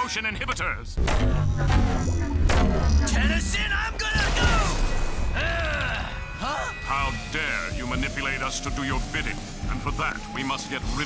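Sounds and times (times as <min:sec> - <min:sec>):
sweeping electronic tones: 0:04.7 - 0:11.0.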